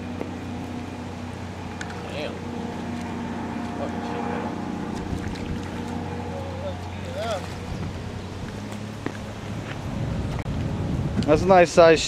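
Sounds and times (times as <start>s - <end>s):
outboard motor humming: 0.0s - 11.6s.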